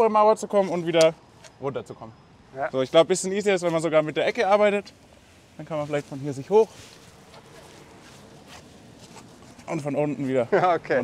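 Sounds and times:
low even street noise: 0.0 - 11.0.

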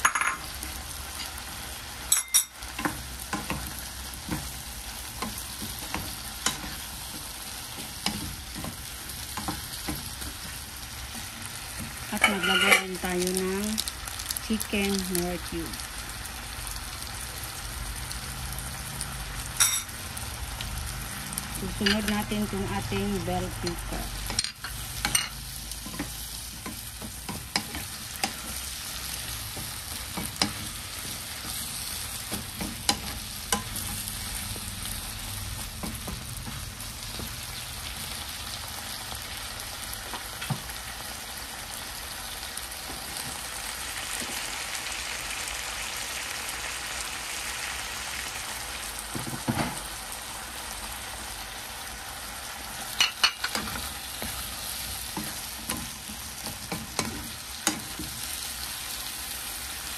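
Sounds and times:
food sizzling in a pan: 0.0 - 59.9.

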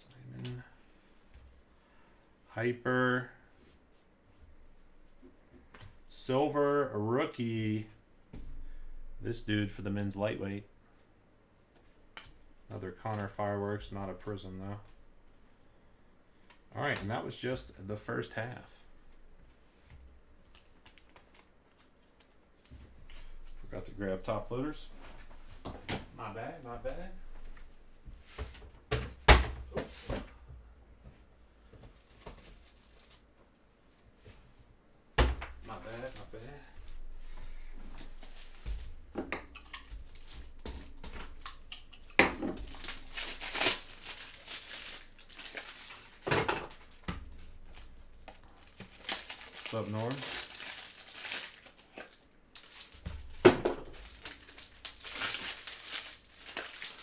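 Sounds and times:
plastic rustling and crinkling: 20.4 - 23.8, 31.8 - 33.5, 35.5 - 57.0.

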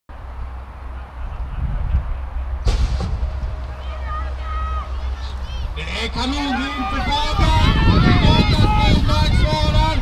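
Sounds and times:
steady low rumble: 0.1 - 10.0.

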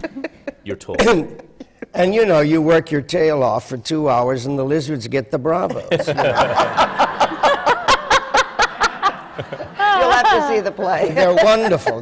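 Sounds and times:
person laughing: 0.0 - 2.0.

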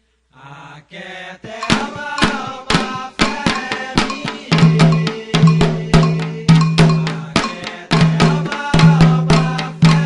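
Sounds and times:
hand drums: 1.4 - 10.0
metal bell struck: 1.6 - 2.6.

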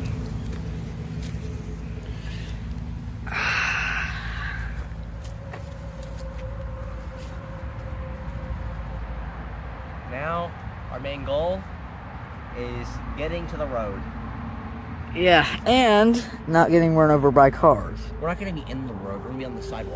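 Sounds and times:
distant road traffic rumble: 0.0 - 19.9.

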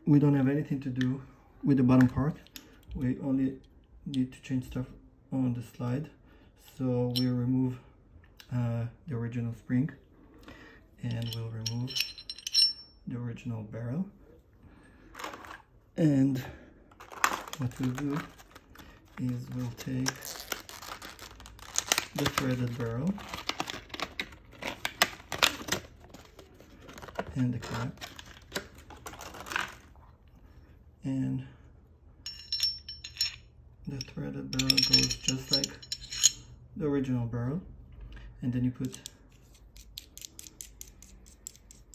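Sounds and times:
light metallic clinks: 11.0 - 13.0, 32.3 - 33.4, 34.0 - 36.5.

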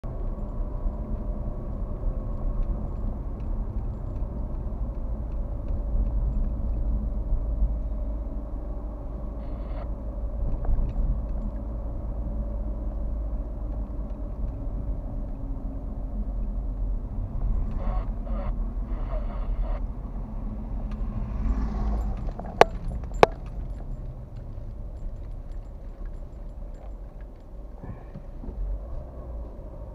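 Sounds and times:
road and engine rumble: 0.0 - 29.9.

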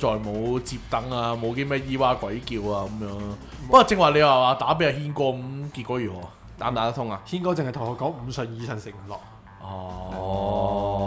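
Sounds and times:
man humming a long syllable: 9.6 - 11.0.

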